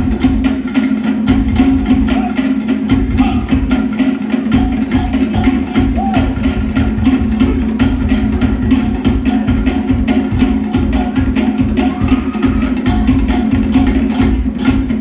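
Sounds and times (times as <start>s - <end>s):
rapid slit drum strikes: 0.0s - 15.0s.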